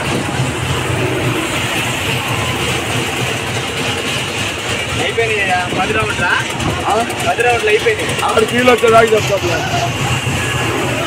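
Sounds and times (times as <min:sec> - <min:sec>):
low mechanical rumble: 0:00.0 - 0:11.0.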